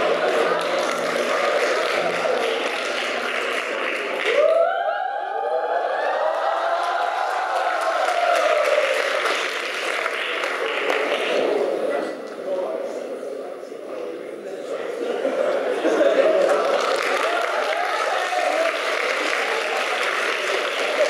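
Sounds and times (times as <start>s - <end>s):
hall audience crowd noise: 0.0s - 21.0s.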